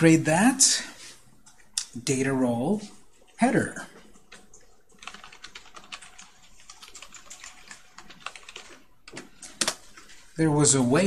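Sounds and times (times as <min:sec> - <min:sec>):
keyboard typing clicks: 0:04.1 - 0:09.8.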